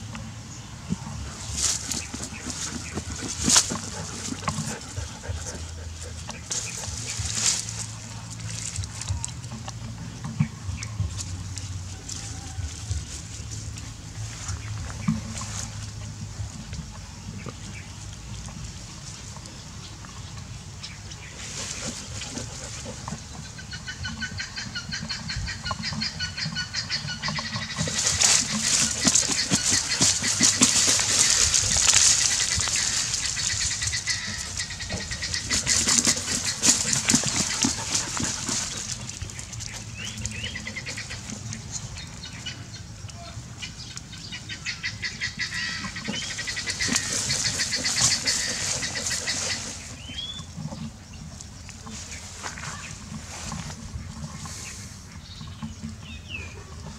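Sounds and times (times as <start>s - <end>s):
dog sniffing: 1.3s - 8.0s, 21.4s - 23.3s, 27.6s - 41.4s
dog scrabbling in grass: 1.3s - 9.2s, 27.5s - 41.4s, 46.2s - 50.0s.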